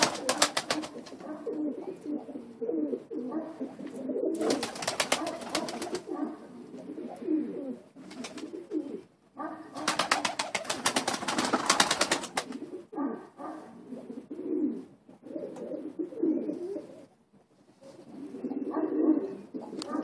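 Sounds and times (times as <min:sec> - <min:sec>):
rapid wingbeats: 0:00.0 - 0:01.2, 0:04.4 - 0:06.1, 0:08.0 - 0:08.6, 0:09.8 - 0:12.6
pigeons cooing: 0:00.0 - 0:20.0.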